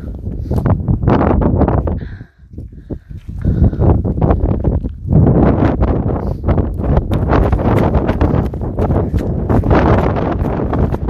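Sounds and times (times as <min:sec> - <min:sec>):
wind buffeting microphone: 0:00.0 - 0:11.0
footsteps crunching on gravel: 0:07.1 - 0:11.0.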